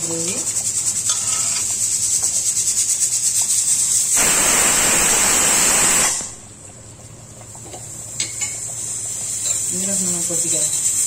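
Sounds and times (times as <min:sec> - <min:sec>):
gravy sizzling in a pan: 0:00.0 - 0:11.0
rushing hiss: 0:04.0 - 0:06.4.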